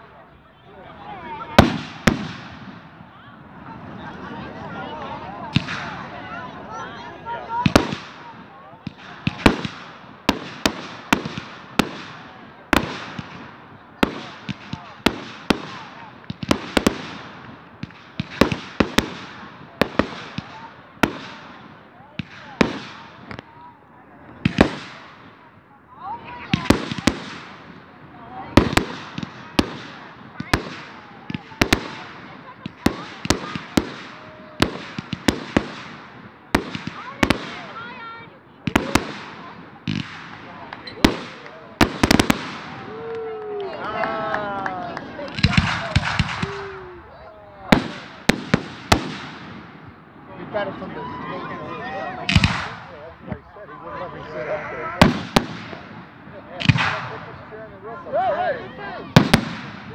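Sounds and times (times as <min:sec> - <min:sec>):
fireworks bursting bangs: 0:01.4 - 0:04.0, 0:05.4 - 0:06.3, 0:07.3 - 0:23.6, 0:24.4 - 0:25.6, 0:26.2 - 0:43.1, 0:45.0 - 0:50.2, 0:52.2 - 0:53.5, 0:54.9 - 0:57.5, 0:59.0 - 0:59.9.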